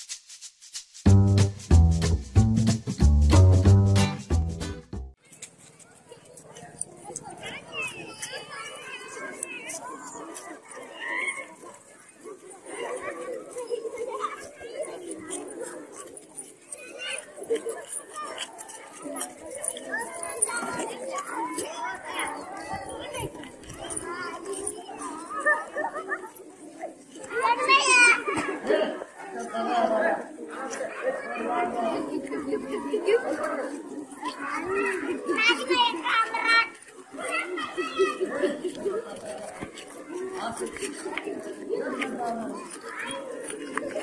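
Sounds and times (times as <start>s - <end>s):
children chattering: 5.1s - 44.0s.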